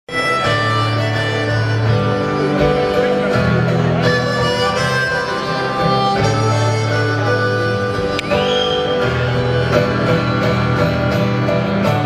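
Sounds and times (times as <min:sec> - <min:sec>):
harmonica holding long notes: 0:00.1 - 0:12.0
live rock band playing: 0:00.1 - 0:12.0.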